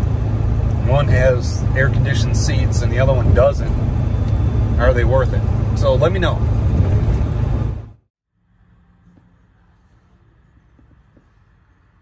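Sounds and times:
vehicle road and engine rumble: 0:00.0 - 0:12.0.

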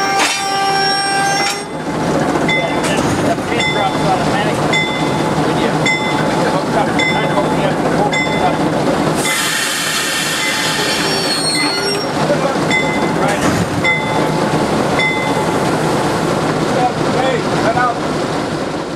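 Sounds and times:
locomotive bell ringing: 0:00.0 - 0:08.7, 0:10.4 - 0:16.1
diesel locomotive idling: 0:00.0 - 0:18.9.

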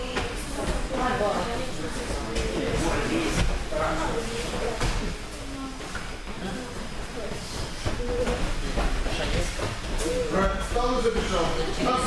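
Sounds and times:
voices across hall: 0:00.0 - 0:12.0.

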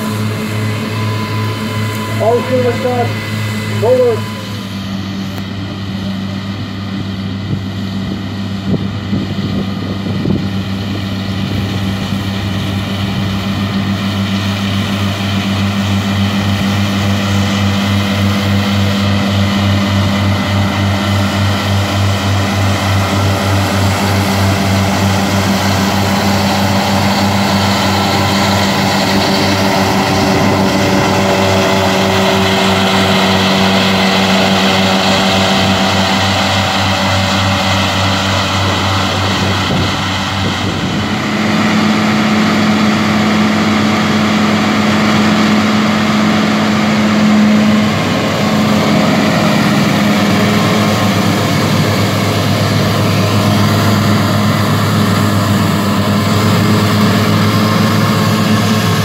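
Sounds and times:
tractor and mower droning: 0:00.0 - 0:59.0.

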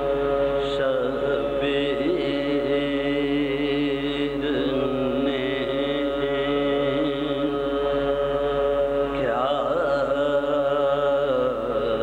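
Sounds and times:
person chanting melodic verse: 0:00.0 - 0:12.0
steady held drone: 0:00.0 - 0:12.0.

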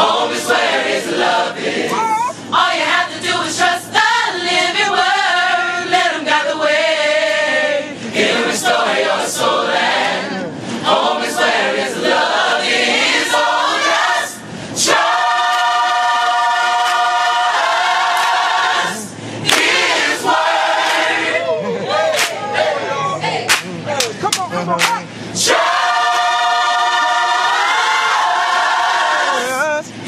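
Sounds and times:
gospel choir singing: 0:00.0 - 0:23.8, 0:25.2 - 0:29.8.

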